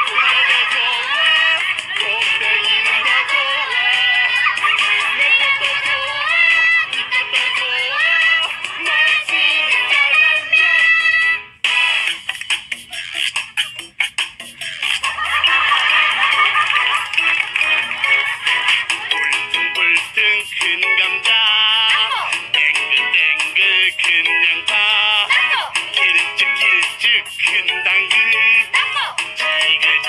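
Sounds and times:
man singing: 0.0s - 4.0s, 19.5s - 28.8s, 29.4s - 30.0s
pop backing track: 0.0s - 30.0s.

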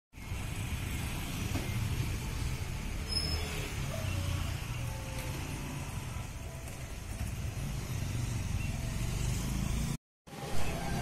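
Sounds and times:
road traffic rumble: 0.1s - 11.0s.

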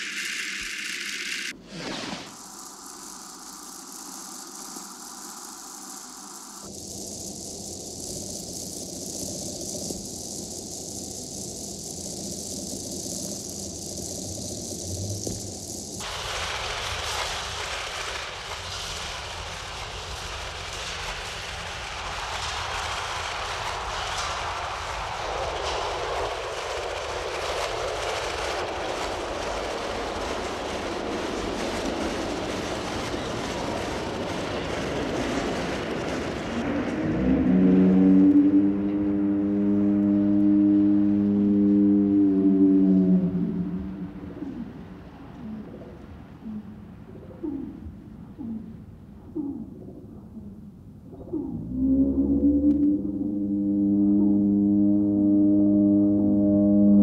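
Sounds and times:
hissing noise wash: 0.0s - 57.0s
short gliding tones: 36.6s - 45.8s, 49.4s - 57.0s
sustained chord of tones: 37.0s - 44.4s, 51.6s - 57.0s.

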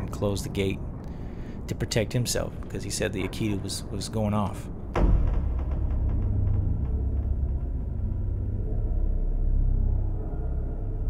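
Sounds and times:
low rumbling drone: 0.0s - 11.0s.

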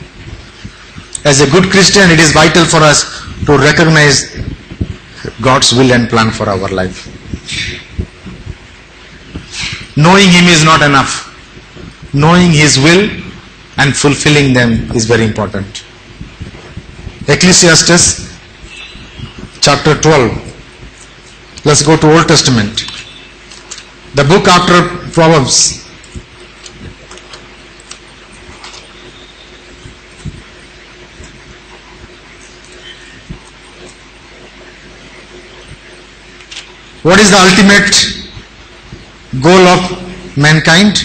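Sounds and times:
low steady hum: 0.0s - 41.0s
pages turning: 26.6s - 28.9s.

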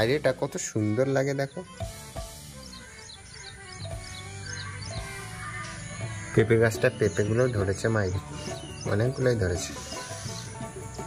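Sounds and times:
soft background music: 0.0s - 11.0s
small bird chirping: 1.6s - 11.0s.

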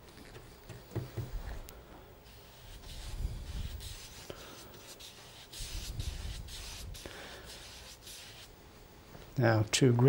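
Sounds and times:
brush bristles scratching paper: 2.3s - 8.5s.

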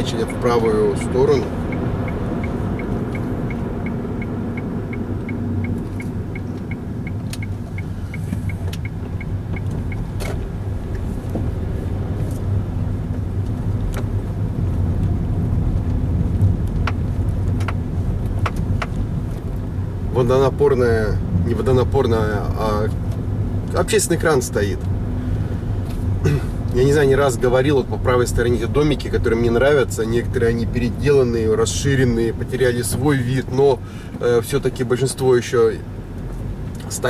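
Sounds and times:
turn-signal ticking: 0.0s - 10.7s
car engine and road rumble: 0.0s - 37.0s.

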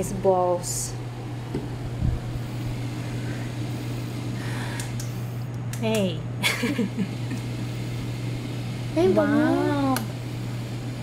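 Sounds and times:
fan motor hum churning water: 0.0s - 11.0s.

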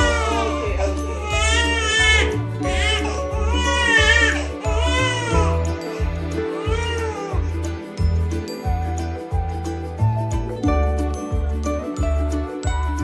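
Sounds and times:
newborn baby crying: 0.0s - 7.6s.

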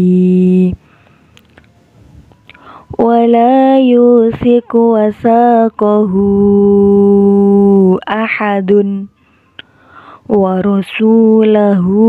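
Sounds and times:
in-breath: 0.8s - 1.4s, 2.5s - 3.0s, 9.2s - 10.3s.

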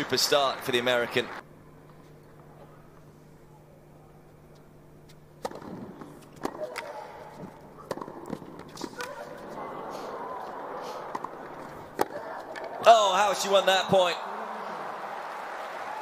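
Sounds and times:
low crowd hum: 0.0s - 16.0s
racket hitting tennis ball: 5.1s - 12.8s
players grunting: 8.9s - 13.4s.

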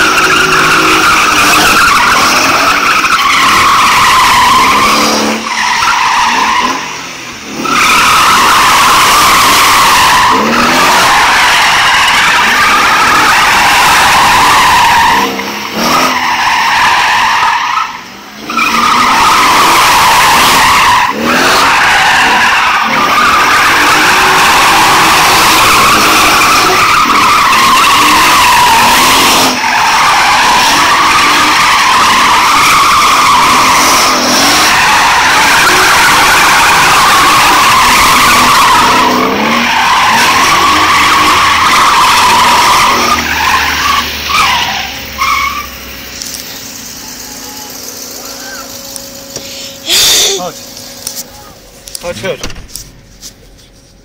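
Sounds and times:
car engine revving: 0.0s - 54.0s
car tyres squealing: 0.0s - 54.0s.

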